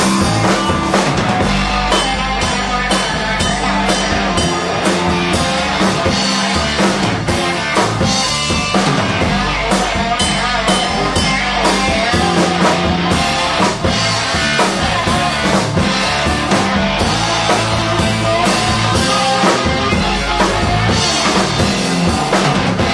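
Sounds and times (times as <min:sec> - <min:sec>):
drum kit beat: 0:00.0 - 0:22.9
electric bass: 0:00.0 - 0:22.9
electric guitar: 0:00.0 - 0:22.9.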